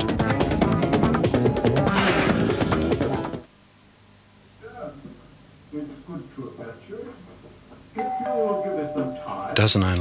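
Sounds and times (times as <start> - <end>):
two-note doorbell chime: 8.0 - 9.6.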